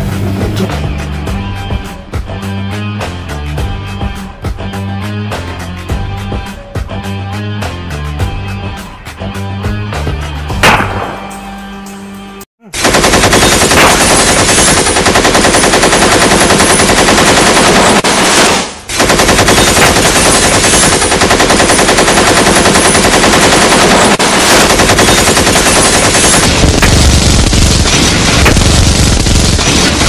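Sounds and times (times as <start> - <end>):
machine-gun automatic fire: 12.8 - 30.0.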